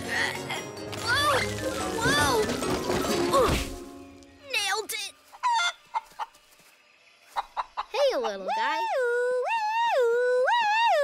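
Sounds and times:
cartoon chicken clucking: 7.4 - 9.9.

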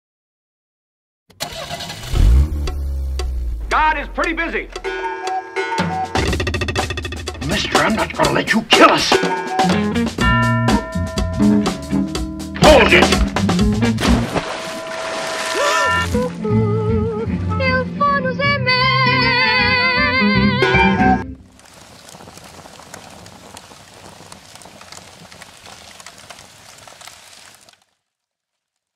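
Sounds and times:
starter motor cranking engine: 1.3 - 3.3
crackling with small clicks: 21.5 - 28.9.

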